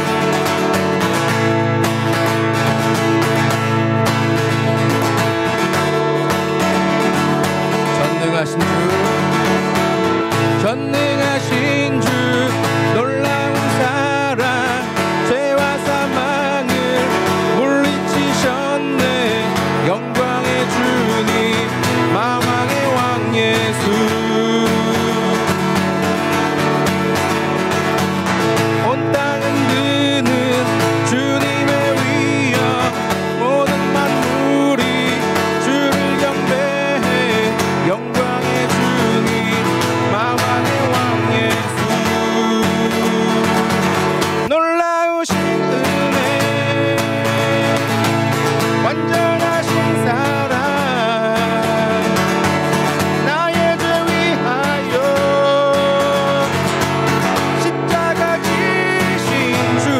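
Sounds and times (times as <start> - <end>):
acoustic guitar: 0.0 - 59.9
man singing worship song: 7.8 - 9.6, 10.4 - 25.8, 28.7 - 59.9.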